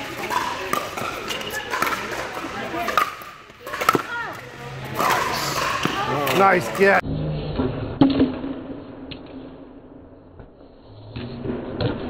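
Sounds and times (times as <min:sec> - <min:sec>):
murmur of voices: 0:00.0 - 0:07.0.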